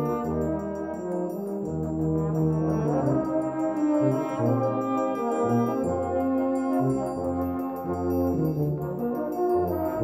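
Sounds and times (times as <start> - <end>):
brass band playing: 0.0 - 10.0.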